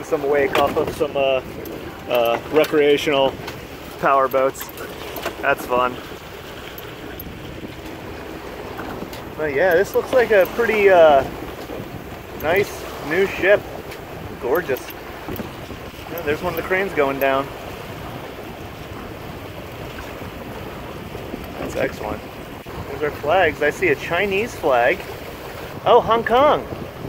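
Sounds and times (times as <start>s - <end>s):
water washing along hull: 0.0s - 27.0s
wind buffeting microphone: 0.0s - 27.0s.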